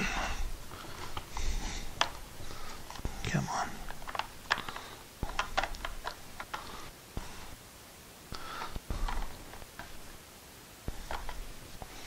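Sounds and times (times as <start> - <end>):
hard plastic clicking and knocking: 3.8 - 7.3, 8.4 - 10.0, 10.9 - 12.0.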